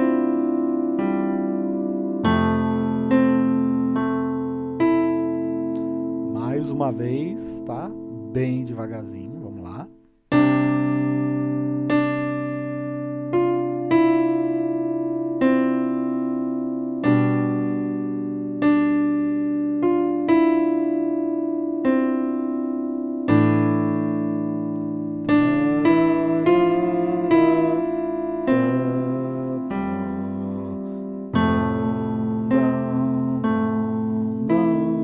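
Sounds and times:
electronic keyboard playing slowly: 0:00.0 - 0:35.0.

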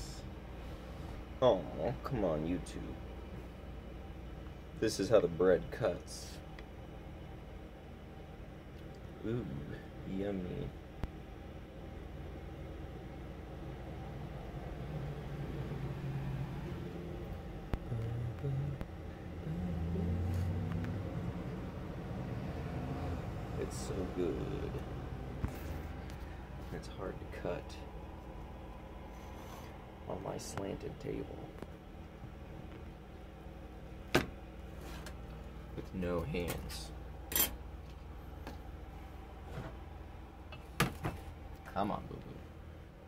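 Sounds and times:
vehicle engine rumble: 0:14.4 - 0:26.7.

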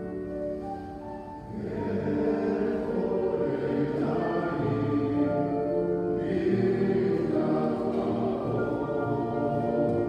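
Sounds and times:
mixed choir singing chords: 0:01.4 - 0:10.0.

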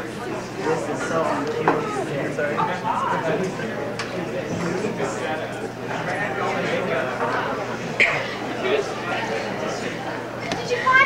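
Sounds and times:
distant indistinct speech: 0:00.0 - 0:11.0.

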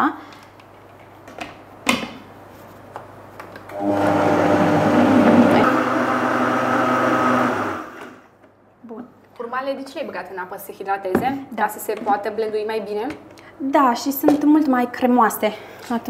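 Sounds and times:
blender motor running: 0:03.7 - 0:08.2.

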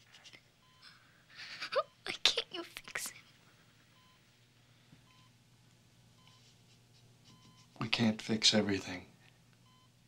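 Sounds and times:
room hum: 0:00.0 - 0:10.0
patient monitor beeps: 0:00.6 - 0:01.0, 0:04.0 - 0:04.3, 0:05.0 - 0:05.4, 0:06.2 - 0:06.6, 0:07.2 - 0:07.8, 0:09.6 - 0:10.0.

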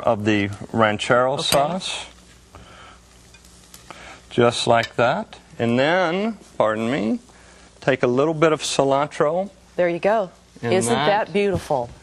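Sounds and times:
room hum: 0:00.0 - 0:12.0.

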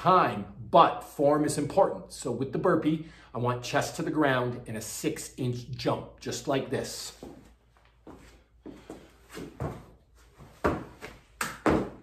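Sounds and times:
scuffs and thuds on rubber mats: 0:07.1 - 0:12.0
sharp hand clap: 0:11.4 - 0:12.0.

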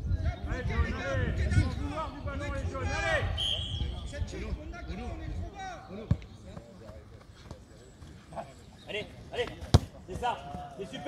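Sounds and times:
football kick thud: 0:09.6 - 0:10.0.

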